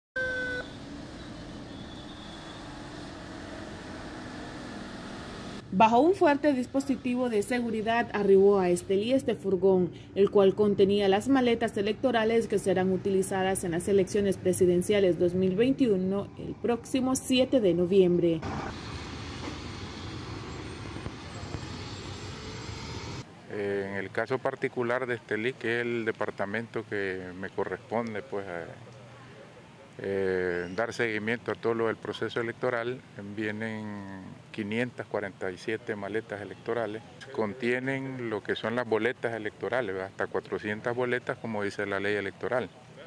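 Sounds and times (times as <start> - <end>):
loud horn tone: 0.2 - 4.0
truck diesel engine: 0.2 - 5.6, 18.4 - 23.3
vehicles driving past: 0.2 - 43.0
tyre and road noise: 10.3 - 43.0.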